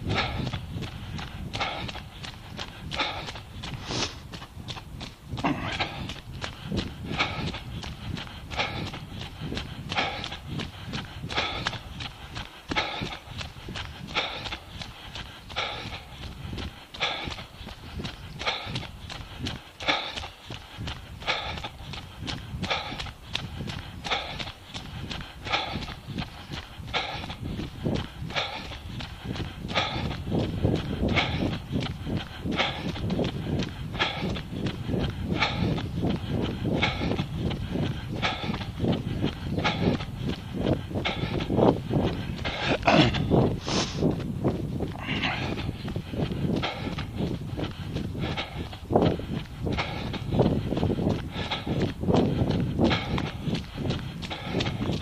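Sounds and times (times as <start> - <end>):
running footsteps on path: 0.0 - 55.0.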